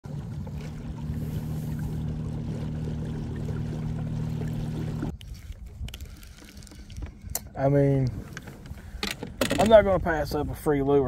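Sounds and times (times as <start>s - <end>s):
water noise: 0.0s - 11.0s.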